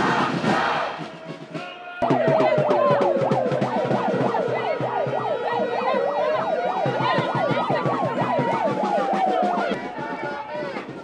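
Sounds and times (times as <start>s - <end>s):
crowd noise: 0.0s - 11.0s
wailing siren: 2.0s - 9.8s
yelp siren: 2.0s - 9.8s.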